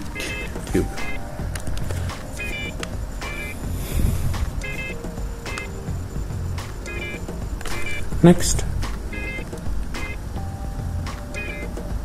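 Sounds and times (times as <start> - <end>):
high-pitched chirping tones: 0.0 - 12.0.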